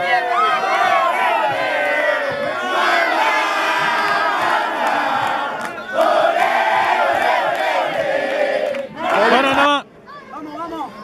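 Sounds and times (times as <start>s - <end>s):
crowd shouting and cheering: 0.0s - 10.4s.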